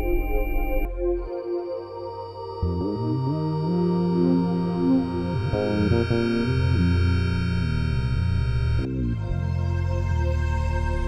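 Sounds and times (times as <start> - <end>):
held high synth chord: 0.0 - 11.0
low swooping synth line: 0.0 - 11.0.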